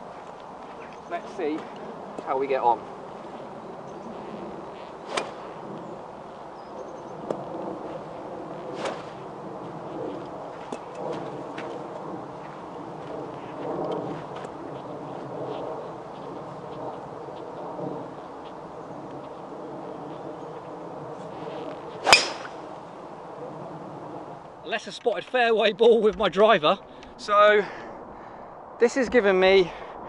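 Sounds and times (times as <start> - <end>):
wind on microphone: 0.0 - 24.8.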